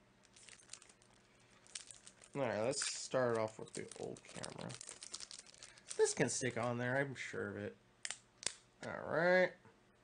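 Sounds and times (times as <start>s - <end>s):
plastic pack crinkling: 0.2s - 7.0s.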